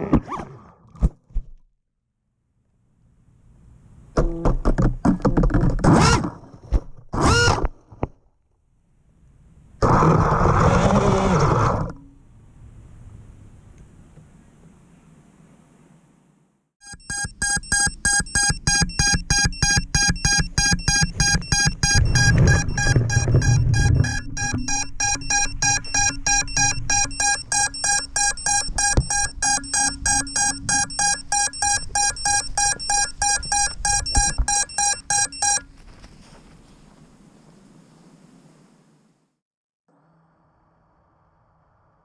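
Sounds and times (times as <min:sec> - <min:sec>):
fast high beeping buzzer: 0:16.8 - 0:35.6.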